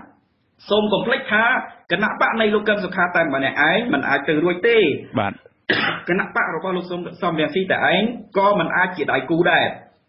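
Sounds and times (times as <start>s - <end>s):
person reading news narration: 0.0s - 5.4s, 6.0s - 9.9s.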